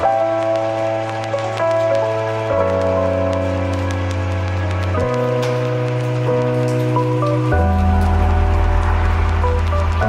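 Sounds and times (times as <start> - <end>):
background music of held chords: 0.0 - 10.0.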